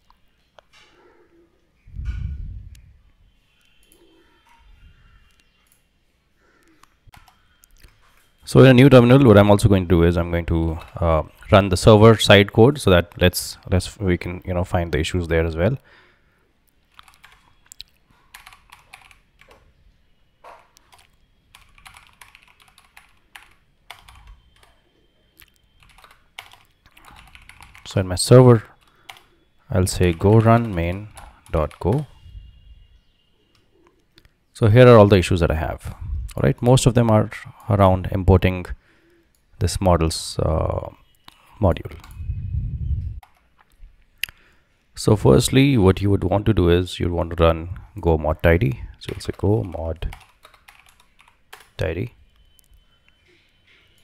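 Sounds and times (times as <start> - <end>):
low muffled rumble: 1.9 - 3.1
typing on computer keyboard: 7.1 - 8.3, 16.9 - 19.6, 20.8 - 24.8, 25.4 - 28.0, 28.8 - 32.1, 43.2 - 43.5, 49.1 - 51.8.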